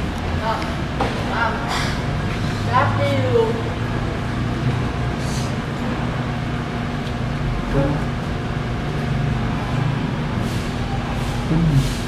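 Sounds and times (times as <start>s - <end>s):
low mechanical hum: 0.0s - 12.0s.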